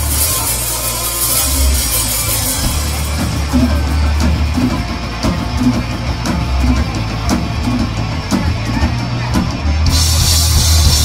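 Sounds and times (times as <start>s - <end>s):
cymbal hits: 0.0s - 6.8s
black metal band playing live: 0.0s - 11.0s
drum beat: 0.0s - 11.0s
low bass: 0.0s - 11.0s.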